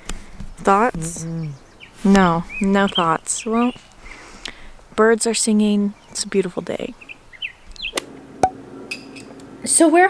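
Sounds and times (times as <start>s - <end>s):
faint birdsong chirps: 0.0s - 8.1s.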